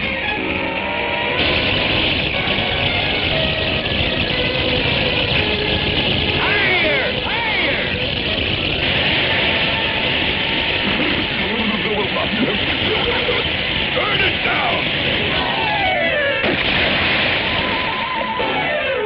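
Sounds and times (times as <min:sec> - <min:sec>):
cartoon water gushing: 0:04.0 - 0:18.9.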